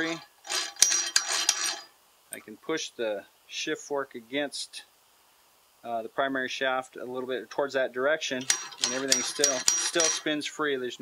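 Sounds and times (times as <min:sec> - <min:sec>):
metal gears rattling and clicking: 0:00.0 - 0:01.9, 0:08.4 - 0:10.3.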